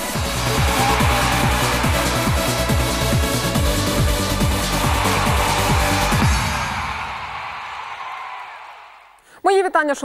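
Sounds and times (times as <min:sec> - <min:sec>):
electronic tv intro music: 0:00.0 - 0:07.8.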